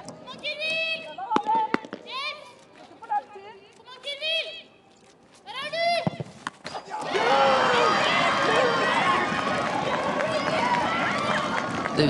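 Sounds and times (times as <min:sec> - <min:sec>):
crowd cheering and shouting: 0:07.0 - 0:12.0.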